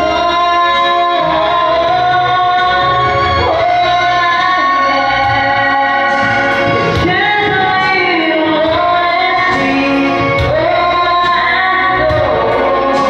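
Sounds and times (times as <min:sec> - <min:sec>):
instrumental accompaniment: 0:00.0 - 0:13.0
woman singing into microphone: 0:00.0 - 0:13.0.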